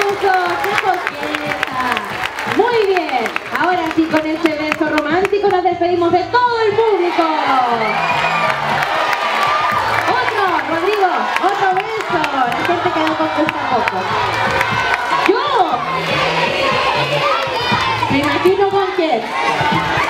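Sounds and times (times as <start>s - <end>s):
children cheering and shouting: 6.8s - 20.0s.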